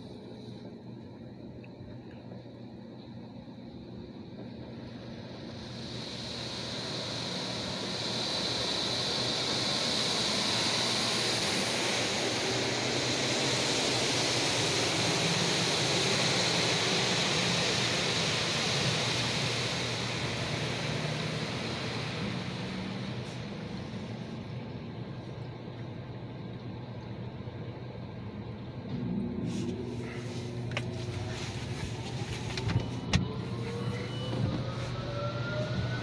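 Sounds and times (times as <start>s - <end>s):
high-pressure water spraying car: 4.9s - 24.5s, 29.4s - 36.0s.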